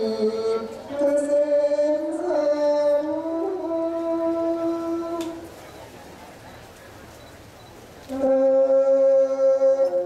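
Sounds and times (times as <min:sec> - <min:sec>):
person chanting long notes: 0:00.0 - 0:05.3, 0:08.1 - 0:10.0.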